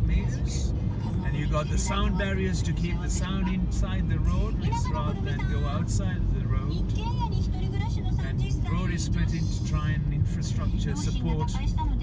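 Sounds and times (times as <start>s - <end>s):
man talking: 0.0s - 6.8s, 8.7s - 11.5s
car cabin road rumble: 0.0s - 12.0s.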